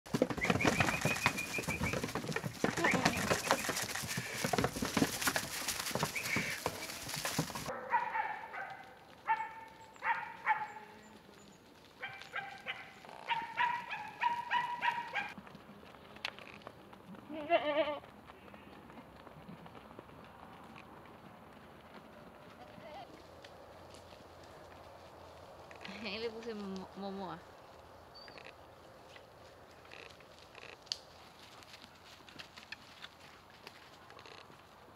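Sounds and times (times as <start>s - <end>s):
hooves knocking on wooden floor: 0.1s - 7.7s
goat bleating: 17.2s - 18.1s, 22.6s - 23.1s.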